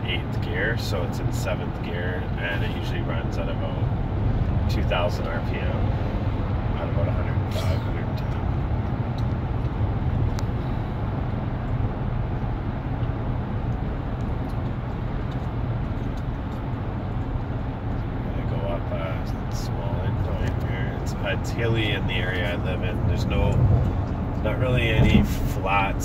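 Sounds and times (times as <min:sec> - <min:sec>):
road noise: 0:00.0 - 0:26.0
truck engine droning: 0:00.0 - 0:26.0.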